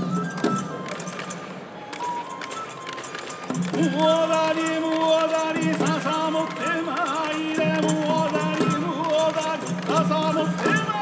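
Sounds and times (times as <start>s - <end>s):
drum strikes: 3.3s - 11.0s.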